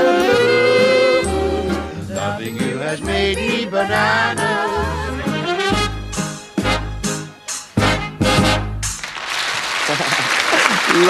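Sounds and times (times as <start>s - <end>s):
audience applause: 9.0s - 11.0s.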